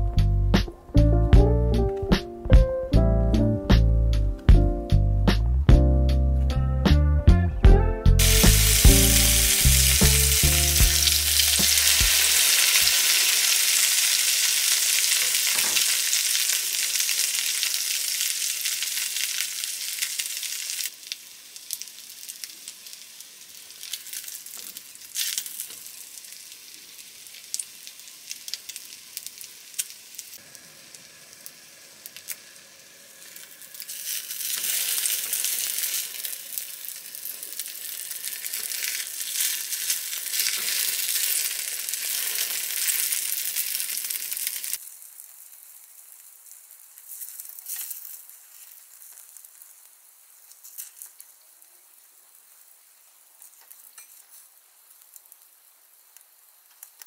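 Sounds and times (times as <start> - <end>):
background music: 0.0 - 12.9
bread sizzling in frying pan: 8.2 - 57.0.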